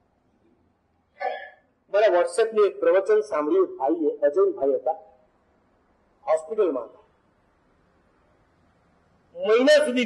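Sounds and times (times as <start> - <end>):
man's short vocal sound: 1.2 - 1.7.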